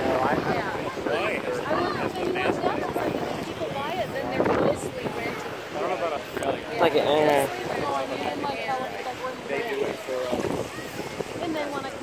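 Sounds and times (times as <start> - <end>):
indistinct talking voices: 0.0 - 12.0
wind noise: 0.0 - 12.0.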